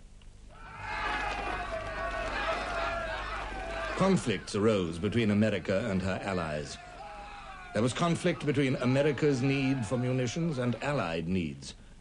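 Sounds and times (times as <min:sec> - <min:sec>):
men yelling together: 0:00.6 - 0:11.2.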